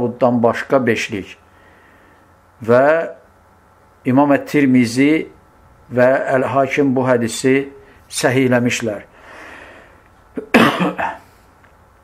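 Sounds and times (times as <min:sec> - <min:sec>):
man coughing: 0:10.4 - 0:11.4.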